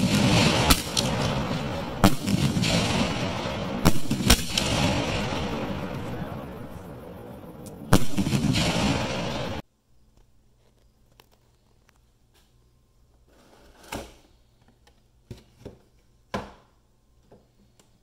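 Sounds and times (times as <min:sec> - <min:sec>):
firework shells bursting: 0:00.0 - 0:09.6
hissing crackling firework tail: 0:00.0 - 0:09.6.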